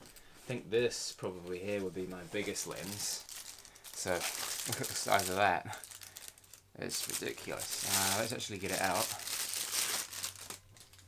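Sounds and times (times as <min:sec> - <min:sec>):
plastic wrapping crinkling: 0:01.3 - 0:11.0.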